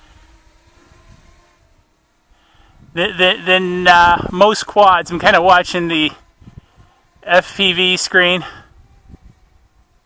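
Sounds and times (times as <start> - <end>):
distant drone propellers humming: 0.0 - 10.0.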